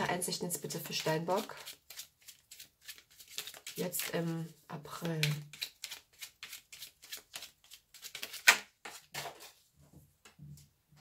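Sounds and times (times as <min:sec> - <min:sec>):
cards shuffled by hand: 0:00.8 - 0:04.4, 0:05.0 - 0:09.5.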